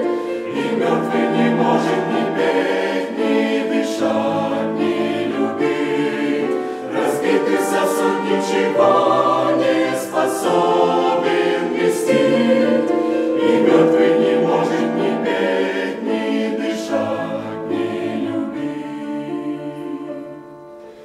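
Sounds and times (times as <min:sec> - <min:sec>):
mixed choir singing a hymn: 0:00.0 - 0:20.9.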